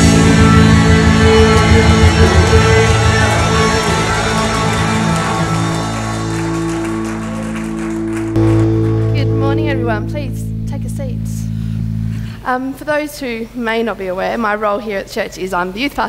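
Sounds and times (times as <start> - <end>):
worship band with electric guitars: 0.0 - 9.5
person's voice: 9.2 - 11.5.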